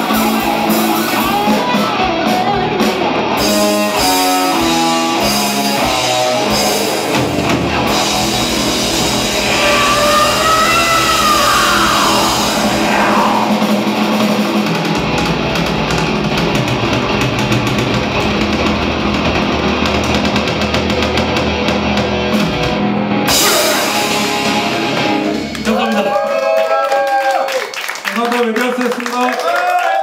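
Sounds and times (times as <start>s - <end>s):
fast drumming: 0.0s - 26.2s
heavy metal band playing live: 0.0s - 26.2s.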